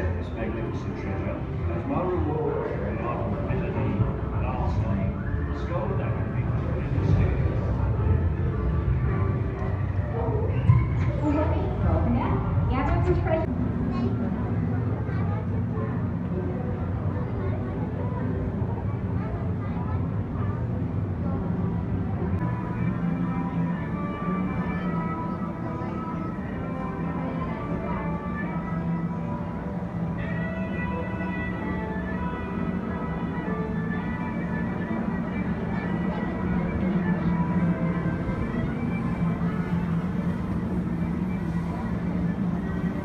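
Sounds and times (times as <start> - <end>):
constant low hum: 0.0 - 43.0
music: 0.0 - 43.0.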